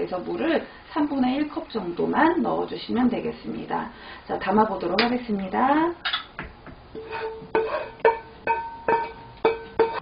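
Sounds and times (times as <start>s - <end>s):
wooden spatula knocking in pan: 7.5s - 10.0s.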